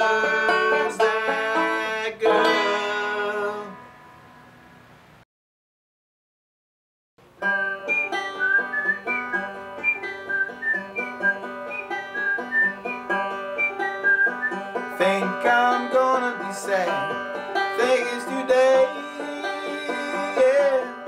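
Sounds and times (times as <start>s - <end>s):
banjo fingerpicking: 0.0s - 3.8s, 7.4s - 21.0s
person singing: 0.0s - 3.8s, 14.9s - 21.0s.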